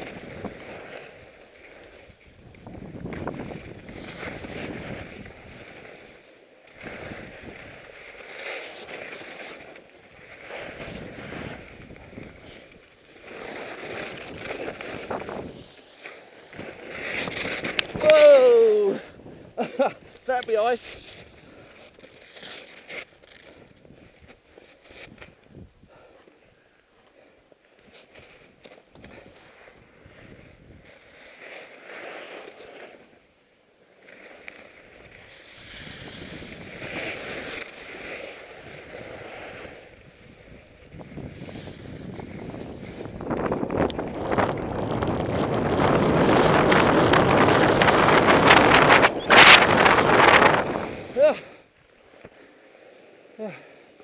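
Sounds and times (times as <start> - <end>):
skis scraping on hard snow: 0.0 - 54.0
wind on microphone: 2.2 - 5.6, 35.0 - 37.4, 38.6 - 51.3.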